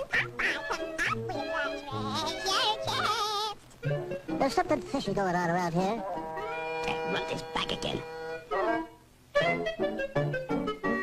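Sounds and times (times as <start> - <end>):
light orchestral music: 1.2 - 11.0.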